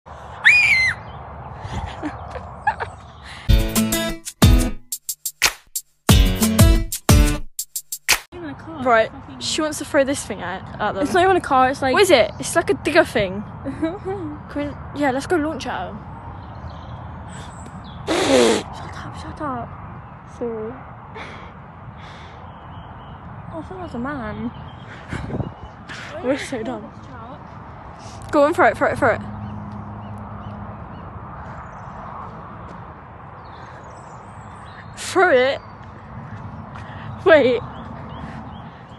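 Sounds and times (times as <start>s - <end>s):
outdoor background noise: 0.1s - 3.5s, 8.2s - 38.9s.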